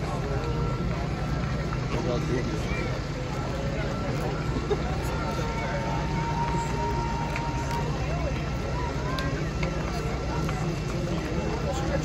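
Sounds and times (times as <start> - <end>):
crowd chatter: 0.0 - 12.0
street noise: 0.0 - 12.0.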